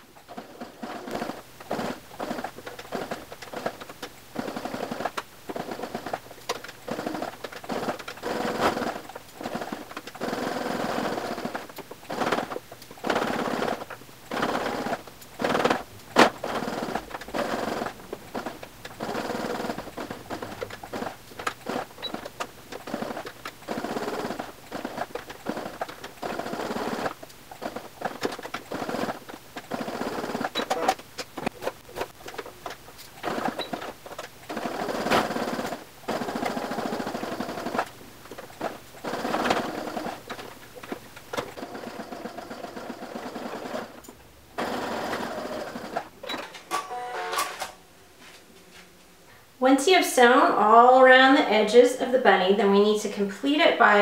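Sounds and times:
sewing machine stitching: 0.2 - 47.7.

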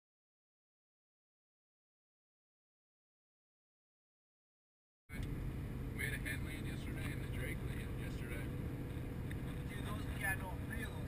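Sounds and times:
faint steady hum: 5.1 - 11.0
truck engine and road rumble: 5.1 - 11.0.

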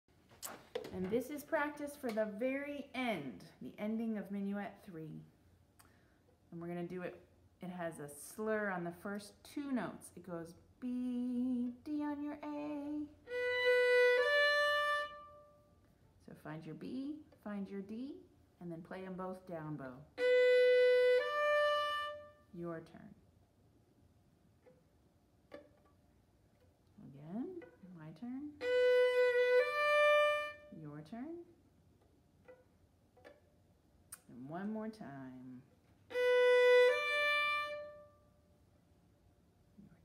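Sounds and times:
faint taps: 0.3 - 1.2
person's voice: 6.6 - 13.2
violin playing: 12.1 - 15.7, 20.1 - 22.5, 28.6 - 31.0, 36.0 - 38.3.

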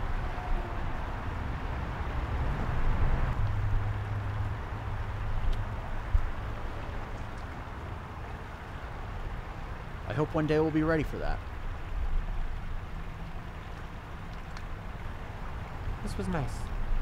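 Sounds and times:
distant traffic hiss: 0.0 - 17.0.

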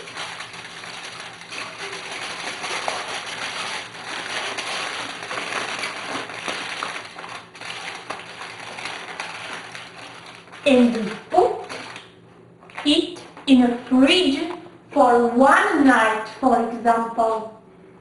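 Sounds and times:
aluminium foil crinkling: 0.0 - 14.6.

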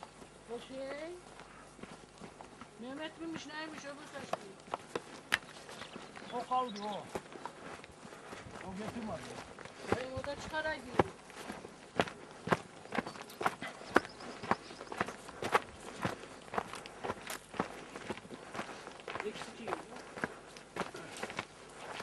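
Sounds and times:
footsteps on mountain path: 0.0 - 22.0.

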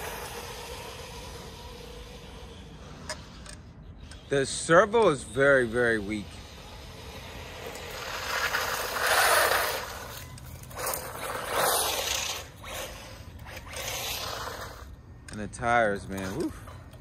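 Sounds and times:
rc truck driving on asphalt: 0.0 - 17.0.

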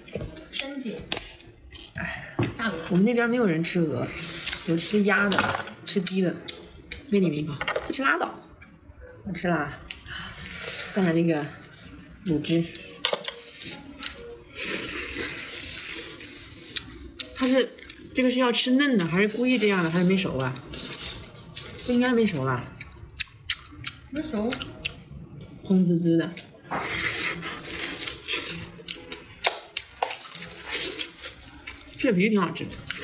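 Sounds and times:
chewing crispy meat: 27.2 - 32.0.

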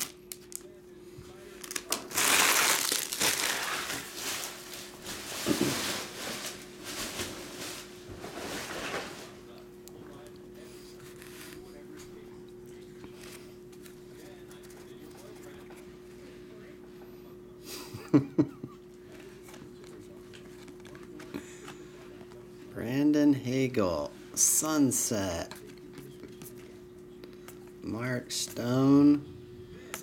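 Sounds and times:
electrical hum: 0.0 - 30.0
foil wrappers crinkling: 1.5 - 9.2.

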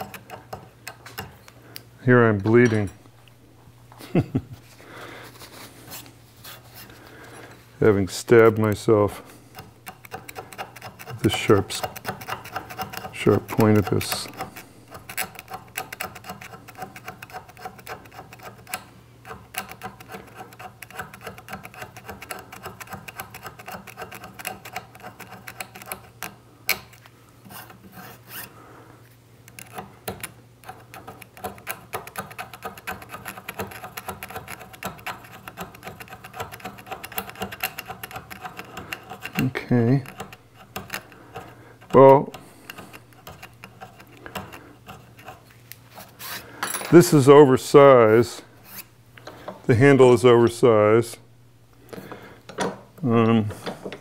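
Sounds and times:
pick scraping file teeth: 9.5 - 28.5, 29.5 - 46.5.

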